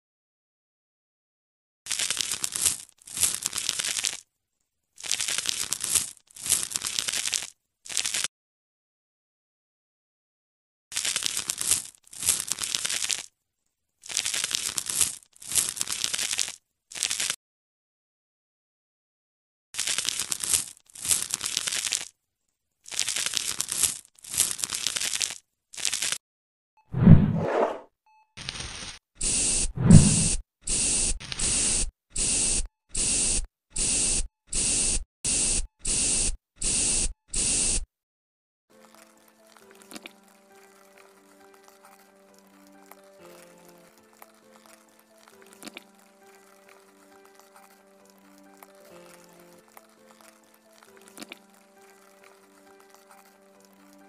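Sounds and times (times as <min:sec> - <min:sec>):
knife scraping: 0:27.0 - 0:27.8
spray bottle spritzes: 0:28.4 - 0:37.8
faint soft music: 0:38.7 - 0:54.0.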